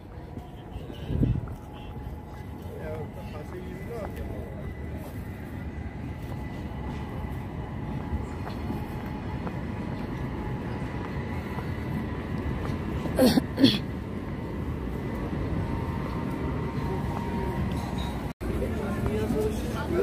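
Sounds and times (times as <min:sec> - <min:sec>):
tram rumbling on tracks: 0:00.0 - 0:20.0.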